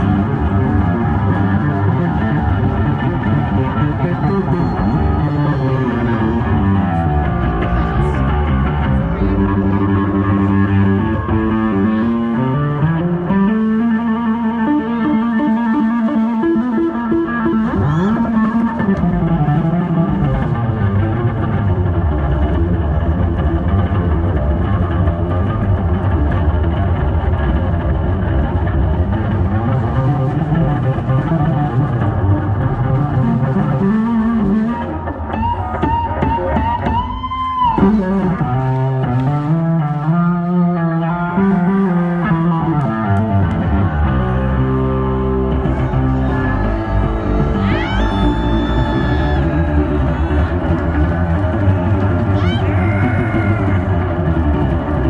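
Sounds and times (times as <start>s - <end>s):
electric bass solo: 0.0s - 55.0s.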